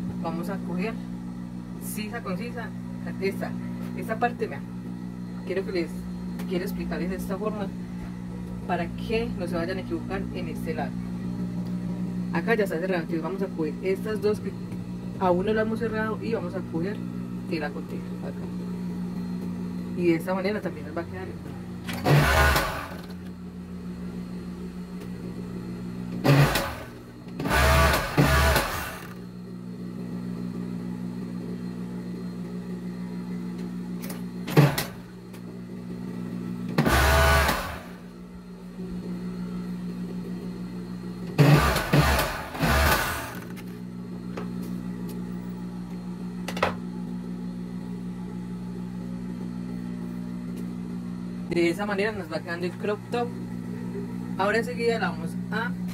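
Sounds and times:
overlock sewing machine stitching: 21.9s - 23.2s, 26.2s - 29.2s, 41.4s - 43.6s.

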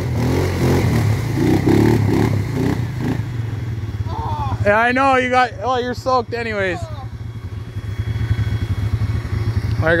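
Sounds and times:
atv engine chugging at low revs: 0.0s - 10.0s.

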